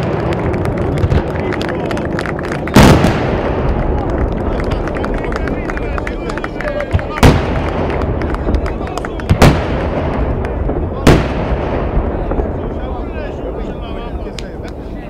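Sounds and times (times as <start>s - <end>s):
crackling of small fireworks: 0.0s - 15.0s.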